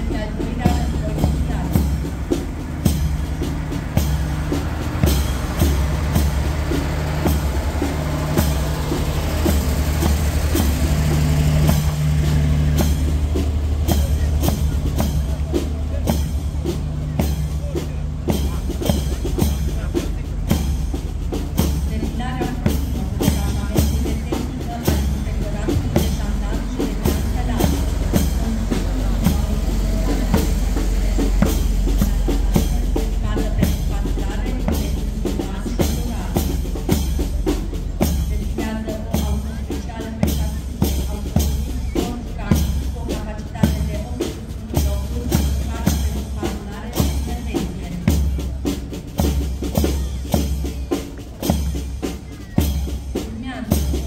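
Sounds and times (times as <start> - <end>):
diesel trucks driving past: 0.0 - 54.0
drum-beat music: 0.0 - 54.0.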